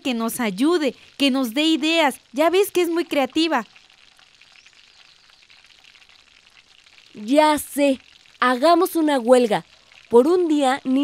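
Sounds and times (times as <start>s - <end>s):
food frying sizzling: 0.0s - 11.0s.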